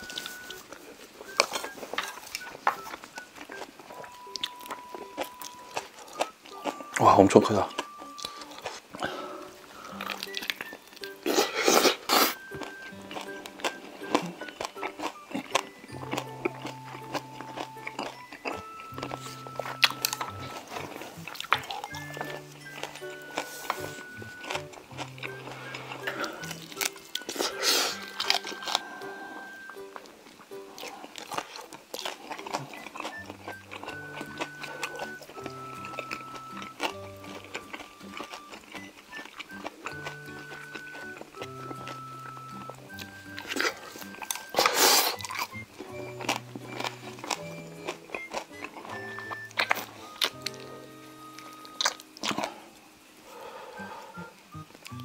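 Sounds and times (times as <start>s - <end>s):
background music of held notes: 0.0s - 55.0s
chewing and crunching food: 0.0s - 55.0s.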